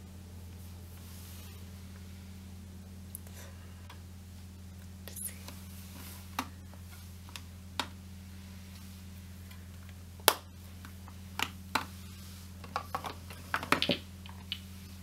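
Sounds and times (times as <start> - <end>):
low hum: 0.0 - 15.0.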